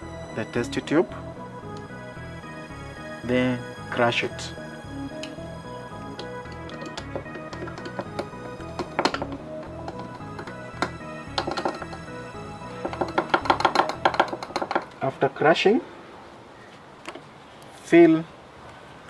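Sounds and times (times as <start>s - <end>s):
background music: 0.0s - 15.2s
stirring rod tapping in test tube: 6.1s - 14.9s.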